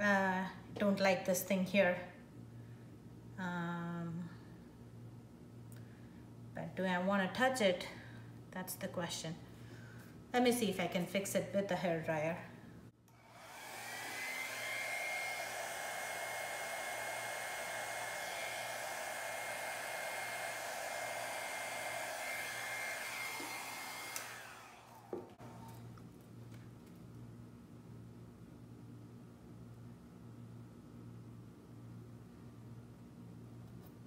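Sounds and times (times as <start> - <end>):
hair dryer blowing: 13.1 - 25.8.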